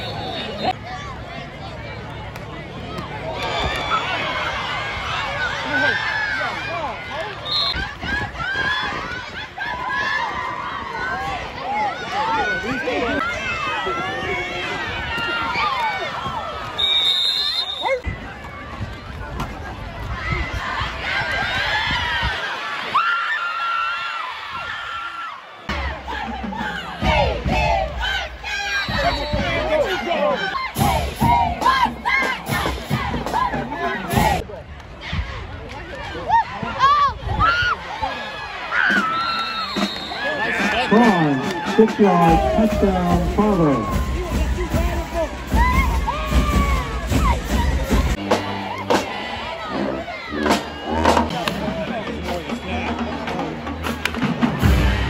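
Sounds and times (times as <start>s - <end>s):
crowd shouting and cheering: 0.0s - 55.0s.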